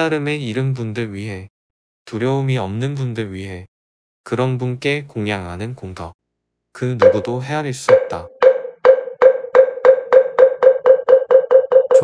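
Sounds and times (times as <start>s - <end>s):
wooden fish knocks: 7.0s - 7.3s, 7.9s - 12.0s.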